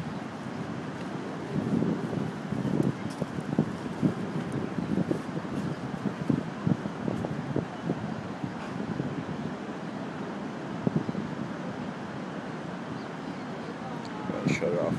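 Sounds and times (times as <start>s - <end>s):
wind buffeting microphone: 0.0s - 11.7s.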